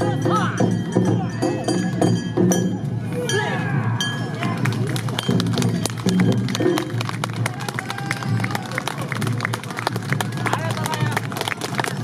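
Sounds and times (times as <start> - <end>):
drum beats: 0.0 - 12.0.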